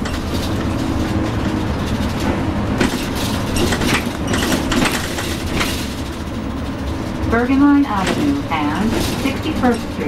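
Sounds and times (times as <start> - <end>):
interior fittings rattling: 0.0 - 7.1
bus engine and road rumble: 0.0 - 10.0.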